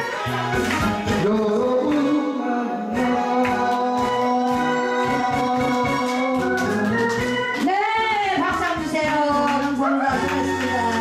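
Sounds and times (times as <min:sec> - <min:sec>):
electronic organ keyboard: 0:03.0 - 0:07.7
drum machine beat: 0:03.4 - 0:11.0.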